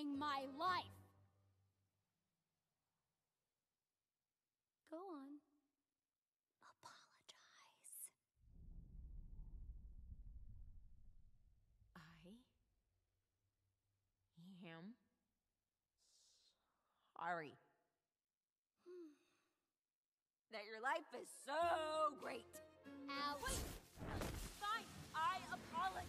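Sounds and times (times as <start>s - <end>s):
person whispering: 6.6s - 8.2s
girl sighing: 18.8s - 19.4s.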